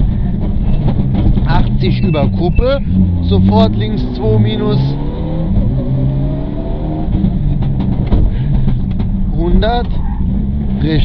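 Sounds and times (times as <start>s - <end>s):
car engine from inside cabin: 0.0s - 11.0s
tyre and road noise: 0.0s - 11.0s.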